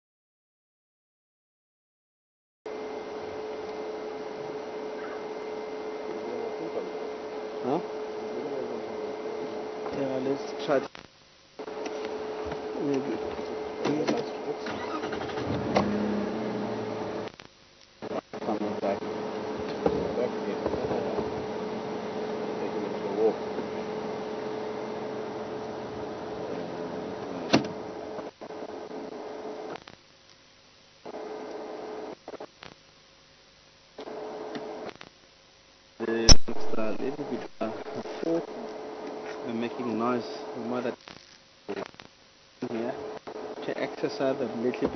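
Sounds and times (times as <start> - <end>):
broadcast hiss: 2.7 - 44.9
steady electrical hum: 2.7 - 44.9
vehicle engine running: 15.0 - 17.3, 18.6 - 28.0.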